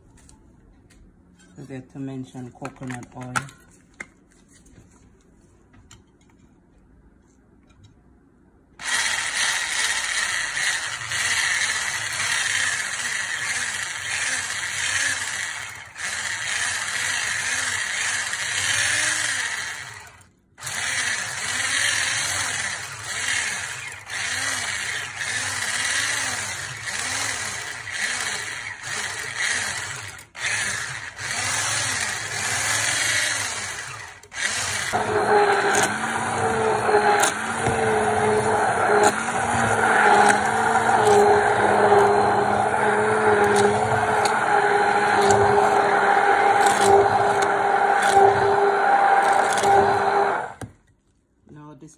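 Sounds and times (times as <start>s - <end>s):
electric hand blender whisking: 8.8s - 50.7s.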